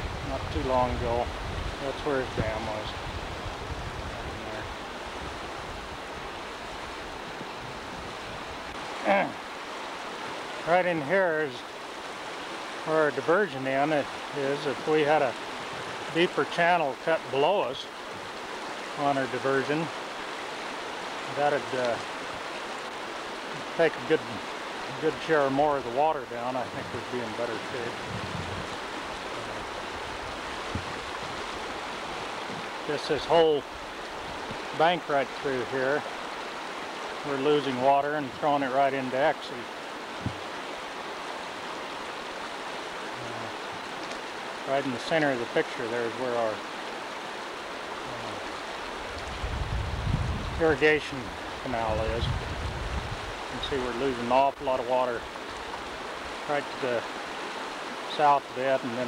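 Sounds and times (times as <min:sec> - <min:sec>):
floodwater rushing: 0:00.0 - 0:59.0.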